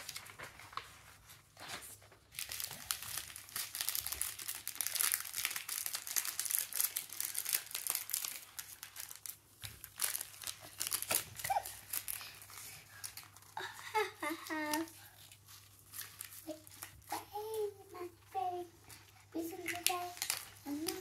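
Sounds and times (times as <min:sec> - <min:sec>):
plastic bag crinkling: 0:01.7 - 0:21.0.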